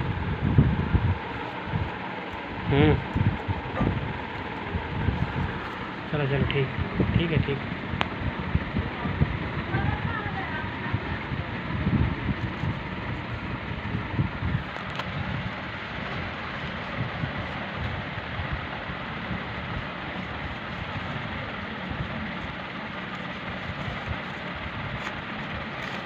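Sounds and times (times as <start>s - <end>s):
steady background noise: 0.0s - 26.0s
paper notes rustling: 20.1s - 26.0s.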